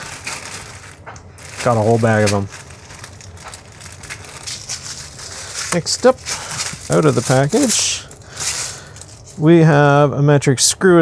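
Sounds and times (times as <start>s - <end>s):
plastic bag crinkling: 0.0s - 9.5s.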